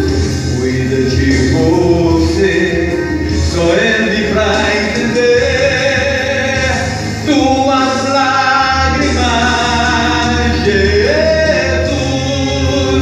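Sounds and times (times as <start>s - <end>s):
man singing into a microphone: 0.0s - 13.0s
steady bass accompaniment: 0.0s - 13.0s.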